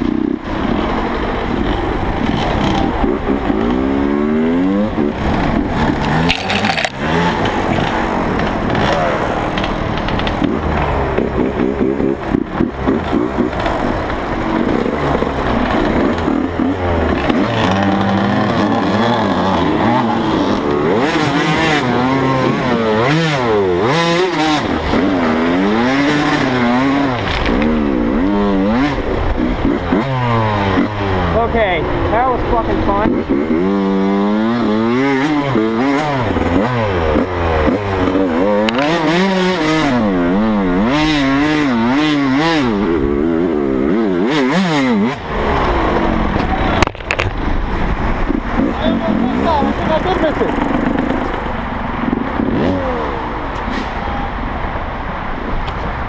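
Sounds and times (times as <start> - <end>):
dirt bike engine revving: 0.0 - 55.3.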